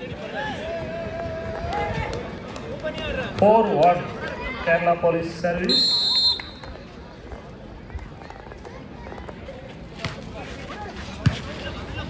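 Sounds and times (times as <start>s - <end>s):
murmur of crowd voices: 0.0s - 12.0s.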